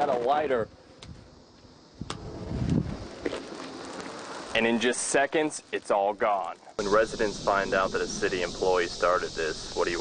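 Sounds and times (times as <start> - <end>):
small crackles: 0.0 - 7.3
hiss of burning: 0.1 - 10.0.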